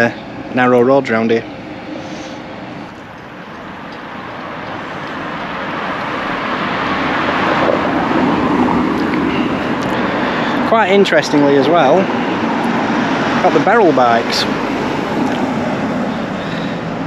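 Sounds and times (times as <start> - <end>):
vehicle engine and tyre noise: 0.0 - 17.0.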